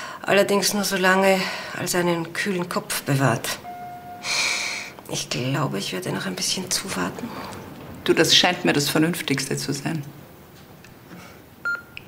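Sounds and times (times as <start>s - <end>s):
medical monitor beep: 3.6s - 4.3s, 11.6s - 12.0s.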